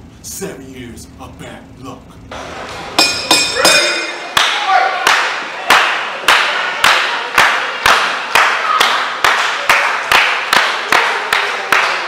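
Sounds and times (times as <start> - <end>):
rhythmic clapping echoing in hall: 2.3 - 12.0.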